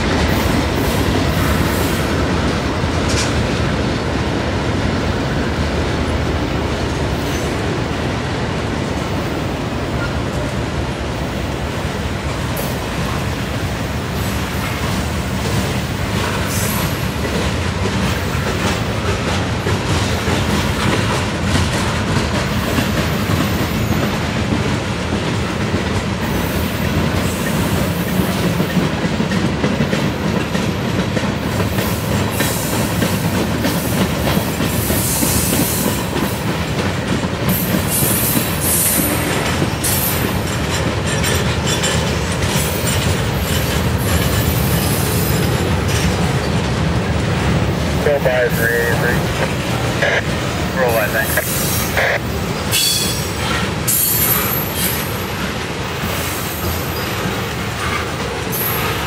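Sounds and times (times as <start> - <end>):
wheels clacking over rail joints: 0.0 - 7.4, 14.5 - 51.0
freight train rumbling past: 0.0 - 59.0.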